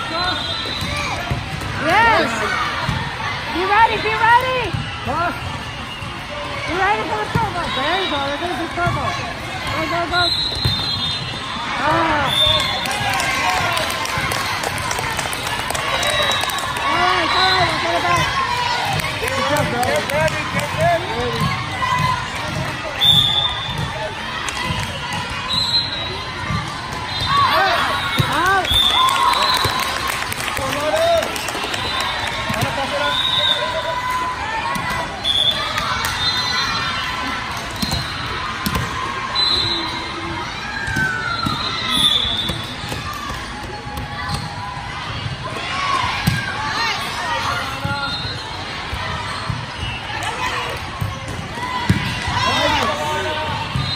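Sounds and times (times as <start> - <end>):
babble of voices in hall: 0.0 - 53.9.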